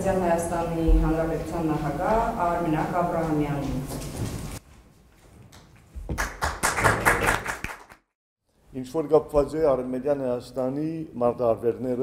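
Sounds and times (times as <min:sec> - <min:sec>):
audience applause: 0:06.2 - 0:08.0.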